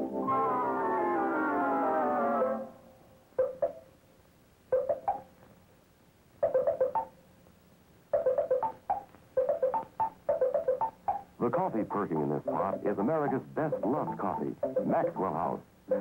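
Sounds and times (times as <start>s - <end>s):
plucked-string jingle: 11.4s - 16.0s.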